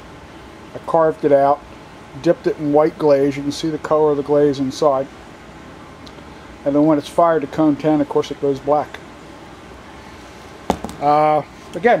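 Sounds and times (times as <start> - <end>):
low room hum: 0.0 - 12.0
pot knocking on table: 10.7 - 11.0.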